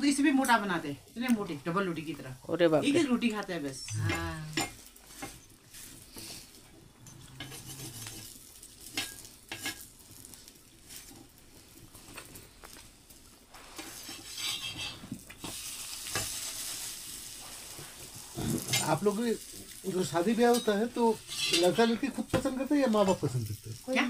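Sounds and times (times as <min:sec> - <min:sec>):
sizzling and flames hissing: 0:00.0 - 0:24.0
metal spatula scraping on griddle: 0:03.9 - 0:09.9, 0:13.5 - 0:23.3.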